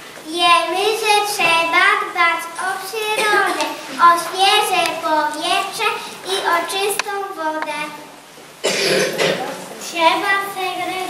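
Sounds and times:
noisy burst: 0:00.0 - 0:11.0
child reciting verse: 0:00.2 - 0:08.2, 0:09.4 - 0:11.0.

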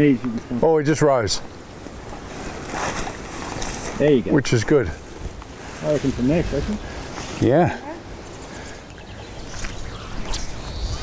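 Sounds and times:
rustle: 0:00.0 - 0:11.0
wind buffeting microphone: 0:09.0 - 0:11.0.

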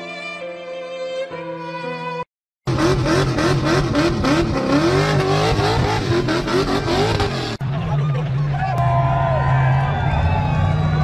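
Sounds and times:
car engine revving: 0:02.7 - 0:08.4.

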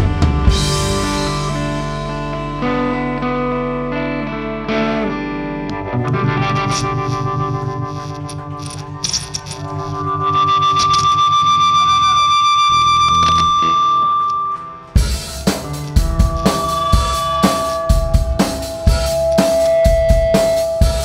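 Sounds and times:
live rock band playing: 0:00.0 - 0:11.8, 0:13.0 - 0:21.0
distorted electric guitar: 0:00.0 - 0:21.0.

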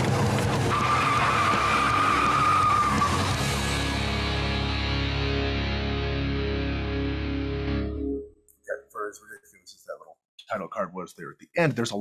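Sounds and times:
car tyres squealing: 0:00.2 - 0:03.4.

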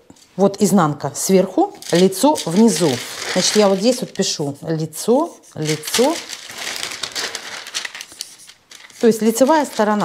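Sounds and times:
paper sheets rustling and crinkling: 0:01.8 - 0:10.0.

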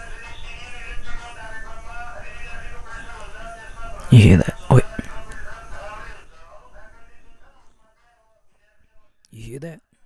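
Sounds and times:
faint radio in another room: 0:00.0 - 0:10.0.

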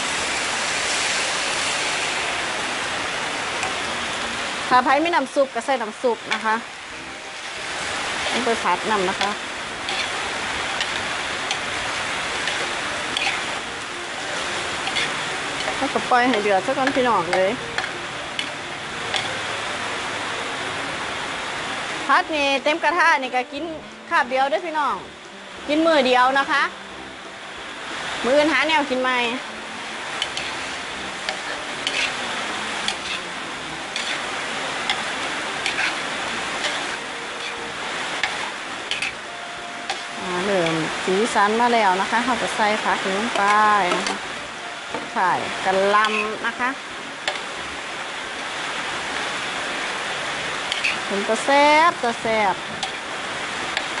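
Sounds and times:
food sizzling in a wok: 0:00.0 - 0:54.0
spatula scraping and tapping pan: 0:08.2 - 0:11.7, 0:12.4 - 0:13.5, 0:14.8 - 0:19.3, 0:30.2 - 0:32.2, 0:32.8 - 0:33.2, 0:33.9 - 0:36.0, 0:36.6 - 0:37.6, 0:38.2 - 0:39.2, 0:43.3 - 0:44.2, 0:46.0 - 0:46.4, 0:47.2 - 0:47.5, 0:50.7 - 0:51.1.

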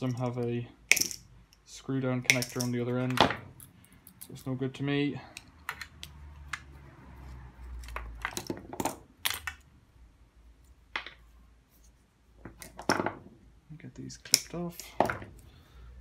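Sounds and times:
small metal and plastic parts clinking: 0:02.3 - 0:04.6.

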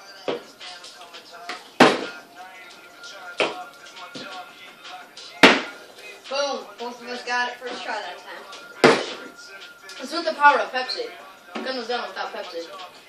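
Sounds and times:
faint music: 0:00.0 - 0:13.0
voices: 0:01.2 - 0:13.0.

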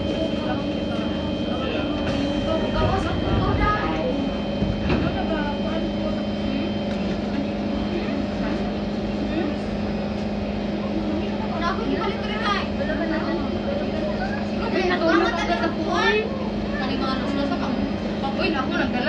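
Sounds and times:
faint voices: 0:00.0 - 0:19.0
train hum at station: 0:00.0 - 0:19.0.

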